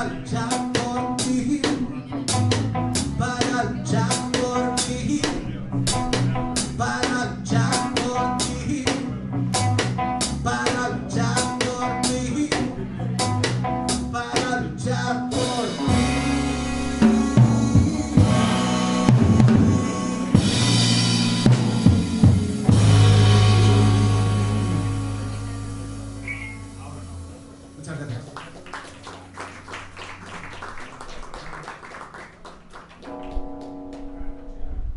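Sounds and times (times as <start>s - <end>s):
drum kit: 0.0s - 27.8s
electric bass: 0.0s - 28.3s
guitar: 0.0s - 31.1s, 32.6s - 34.9s.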